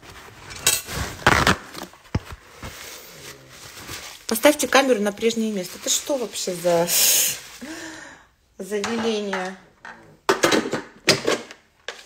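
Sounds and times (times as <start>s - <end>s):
objects rustling and knocking: 0.0s - 4.6s.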